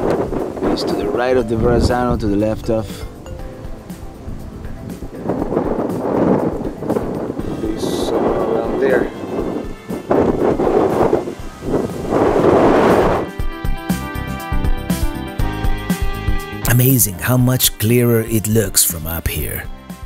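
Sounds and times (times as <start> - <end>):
wind buffeting microphone: 0.0 - 2.6, 3.2 - 13.4
background music: 0.3 - 20.0.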